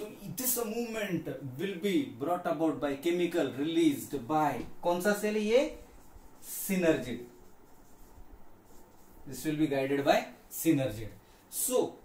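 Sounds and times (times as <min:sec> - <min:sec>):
faint writing scratches on board: 0:04.6 - 0:10.1.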